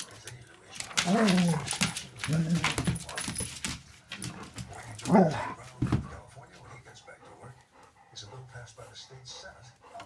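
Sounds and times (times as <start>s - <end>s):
dogs scuffling: 0.0s - 6.8s.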